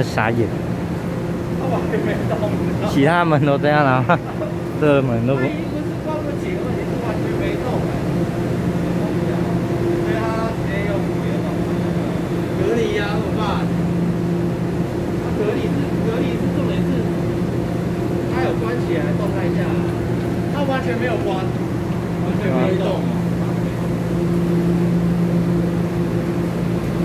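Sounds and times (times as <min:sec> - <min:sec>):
electrical hum of train: 0:00.0 - 0:27.0.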